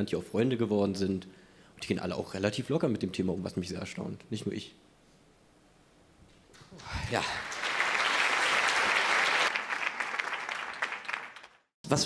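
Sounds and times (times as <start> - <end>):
audience applauding: 6.8 - 11.7.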